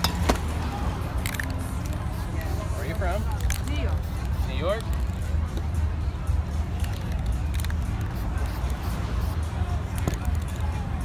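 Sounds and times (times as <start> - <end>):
low street ambience rumble: 0.0 - 11.0.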